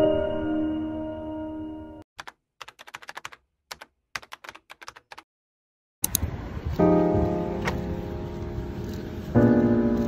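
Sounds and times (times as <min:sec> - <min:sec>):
computer keyboard typing: 0:02.2 - 0:05.3.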